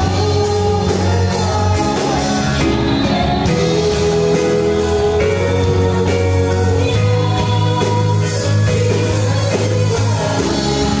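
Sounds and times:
singers on microphones: 0:00.0 - 0:11.0
worship band playing: 0:00.0 - 0:11.0.

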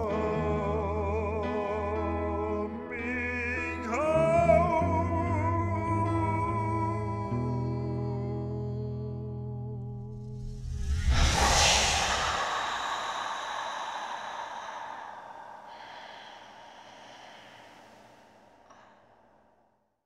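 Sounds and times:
music: 0:00.0 - 0:10.5
rush of noise with deep rumble: 0:10.1 - 0:17.6.

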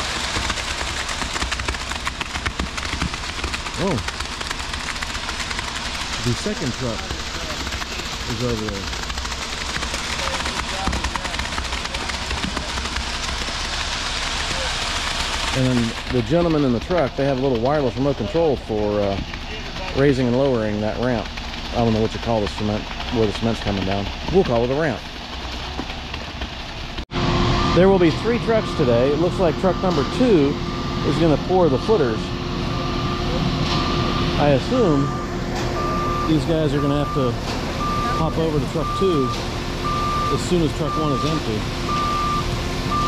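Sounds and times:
wet concrete sliding down chute: 0:00.0 - 0:27.0
truck engine rumbling: 0:00.0 - 0:43.0
high beeping: 0:27.4 - 0:43.0.

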